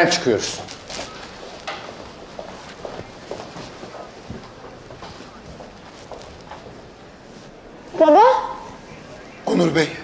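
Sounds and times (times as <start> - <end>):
footsteps on hard floor: 1.4 - 6.8.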